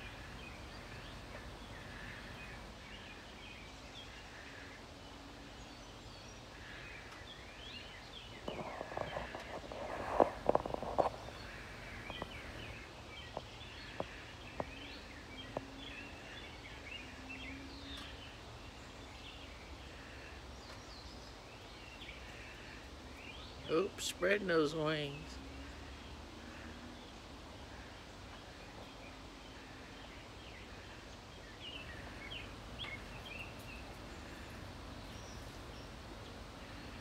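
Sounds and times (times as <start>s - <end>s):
small birds chirping: 0.0s - 37.0s.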